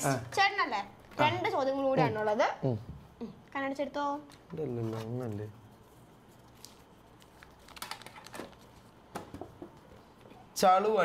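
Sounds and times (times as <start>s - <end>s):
paper crackling: 4.3s - 9.0s.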